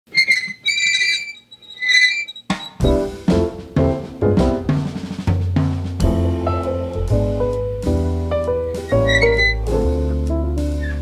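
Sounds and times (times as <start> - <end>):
toy truck wheels squealing: 0.1 - 2.8, 8.9 - 9.6.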